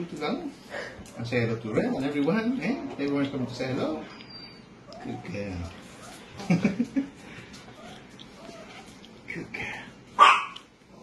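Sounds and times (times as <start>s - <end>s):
dog barking loudly: 10.2s - 10.6s.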